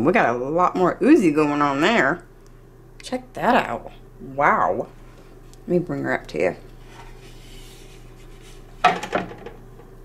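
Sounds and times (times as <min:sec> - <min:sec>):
woman speaking: 0:00.0 - 0:02.3, 0:03.0 - 0:05.0, 0:05.6 - 0:06.6
steady low hum: 0:00.0 - 0:10.0.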